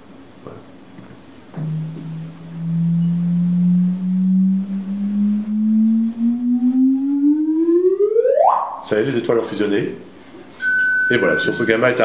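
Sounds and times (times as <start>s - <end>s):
rising chirp tone: 1.6s - 8.8s.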